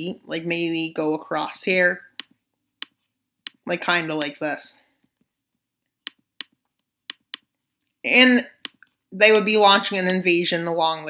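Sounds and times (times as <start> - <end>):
computer mouse clicks: 8.6 - 9.0.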